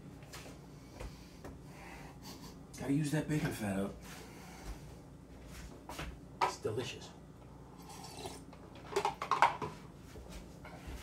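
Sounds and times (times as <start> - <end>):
kitchen items knocking and clattering: 8.9 - 9.8.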